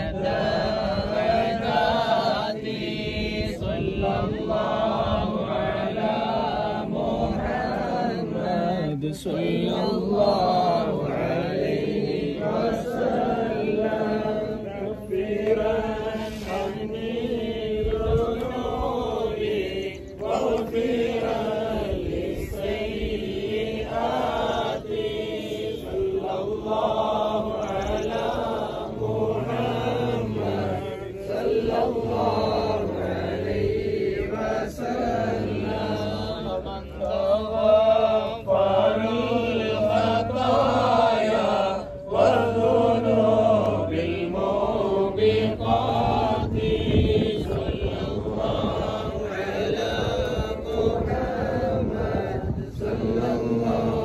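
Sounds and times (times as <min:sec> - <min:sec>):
voices chanting devotional chant: 0:00.0 - 0:54.0.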